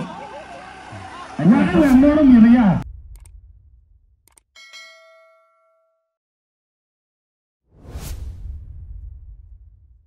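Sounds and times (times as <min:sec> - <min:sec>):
notification bell ding: 0:04.6 - 0:06.0.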